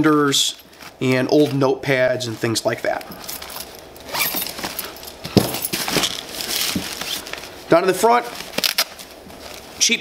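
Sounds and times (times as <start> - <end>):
nylon fabric rustling: 0.2 - 10.0
zipper running: 3.2 - 7.4.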